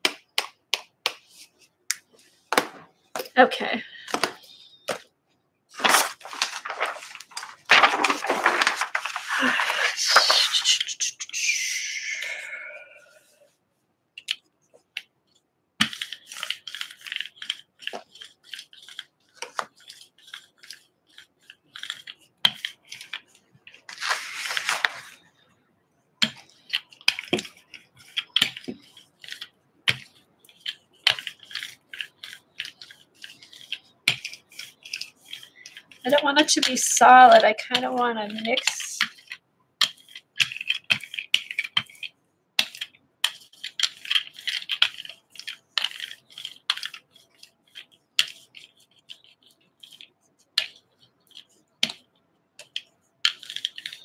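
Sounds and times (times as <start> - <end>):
paint roller tacky crackle: 5.8 - 11.4, 16.2 - 25.2, 26.9 - 39.2.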